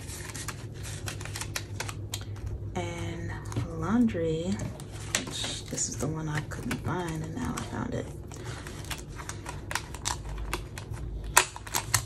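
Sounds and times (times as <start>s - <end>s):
plastic envelope crinkling: 0.0s - 2.7s, 3.4s - 12.0s.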